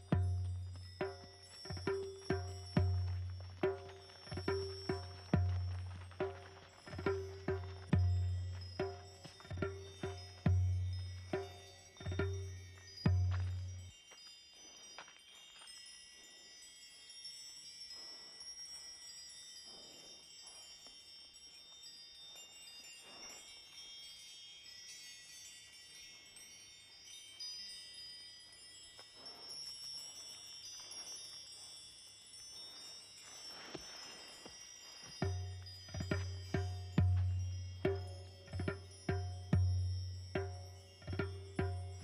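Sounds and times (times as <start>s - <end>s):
faint chime-like film music: 0.0s - 42.0s.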